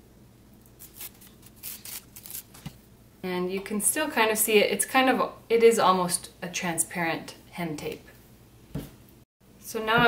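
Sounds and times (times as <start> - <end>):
paper backing being peeled: 0.7 - 2.8.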